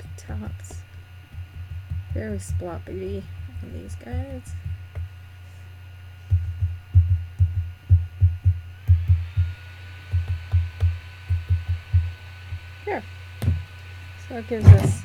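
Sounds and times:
steady low hum: 0:00.0 - 0:15.0
paintbrush dabbing thumps: 0:14.6 - 0:15.0.

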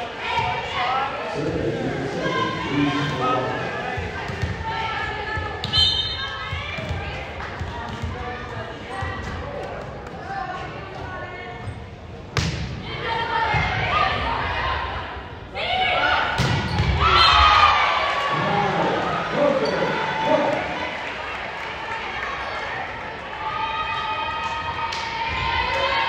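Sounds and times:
spectators chatter: 0:00.0 - 0:26.0.

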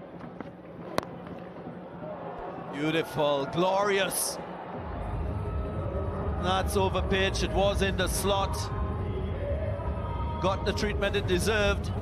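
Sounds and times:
stadium background noise: 0:00.0 - 0:12.0.

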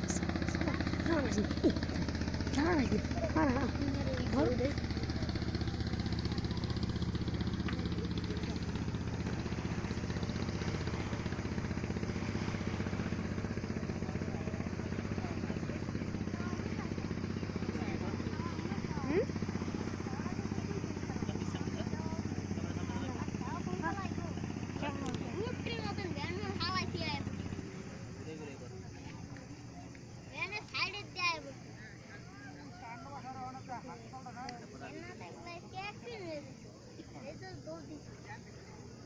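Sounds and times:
engine running steadily: 0:00.0 - 0:39.0
faint voices: 0:00.0 - 0:39.0.

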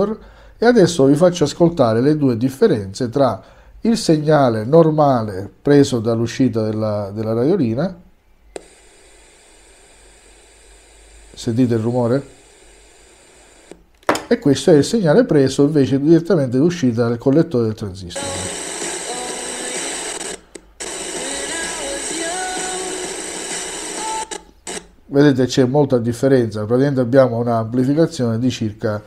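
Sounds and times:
radio static hiss: 0:08.6 - 0:13.8, 0:18.1 - 0:24.9.

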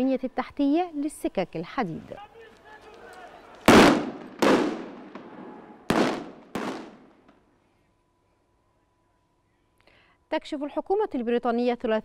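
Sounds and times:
stun grenade blasts echoing: 0:03.7 - 0:07.3.

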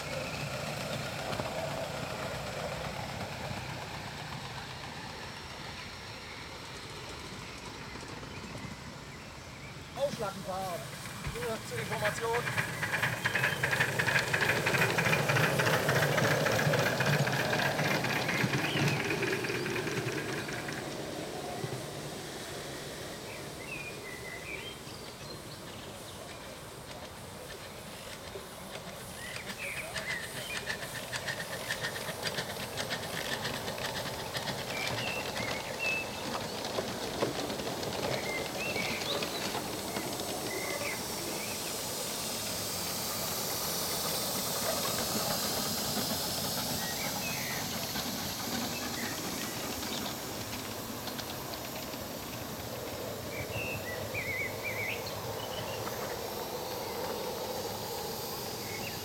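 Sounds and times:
steam hissing: 0:00.0 - 0:59.0
train wheels on rails: 0:00.0 - 0:59.0.

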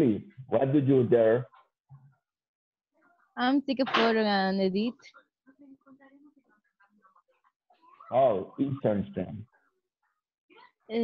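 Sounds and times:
faint broken voice: 0:04.9 - 0:11.0.

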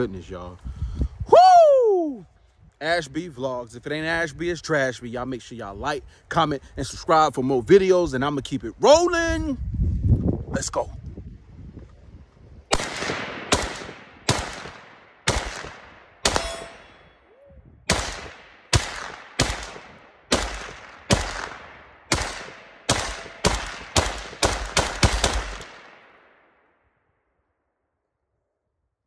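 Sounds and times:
rifle gunshots with echo: 0:12.7 - 0:17.2, 0:17.9 - 0:26.4.

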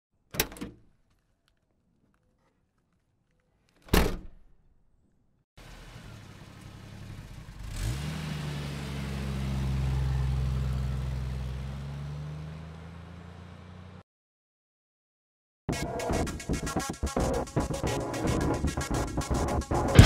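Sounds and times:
vehicle engine revving: 0:05.6 - 0:14.0.

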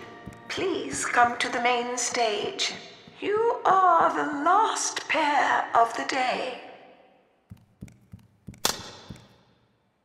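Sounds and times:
running footsteps on wooden floor: 0:00.0 - 0:04.2, 0:07.5 - 0:09.4.

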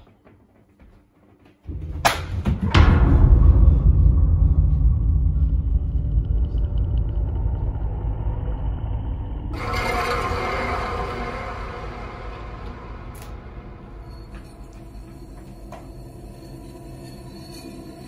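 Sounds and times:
deep low rumble: 0:01.7 - 0:16.9.

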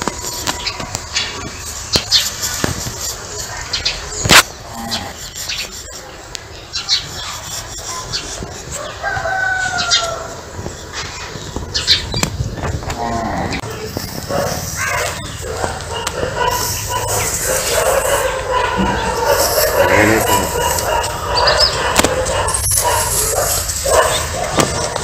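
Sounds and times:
animal calls: 0:00.0 - 0:25.0.

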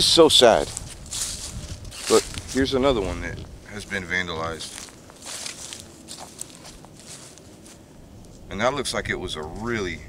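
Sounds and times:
footsteps on grass: 0:00.0 - 0:08.5.

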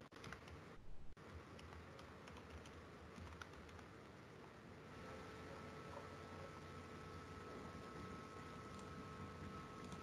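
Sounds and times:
typing on computer keyboard: 0:00.0 - 0:00.6, 0:01.6 - 0:03.9.

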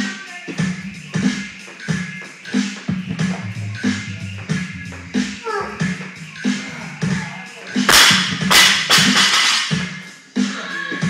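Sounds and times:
background music with steady beat: 0:00.0 - 0:11.0
barbell crashing on wooden platform: 0:07.9 - 0:09.7.

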